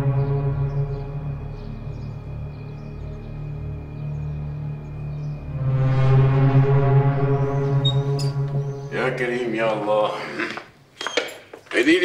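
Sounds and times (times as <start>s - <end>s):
footsteps on stone tiles: 10.2s - 12.0s
walking cane clicking on tiles: 10.5s - 12.0s.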